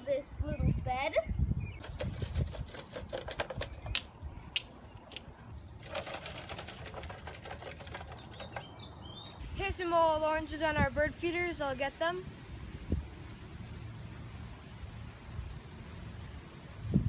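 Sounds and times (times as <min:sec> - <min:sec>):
fruit rattling out of bucket: 0:01.8 - 0:04.0, 0:05.8 - 0:08.8.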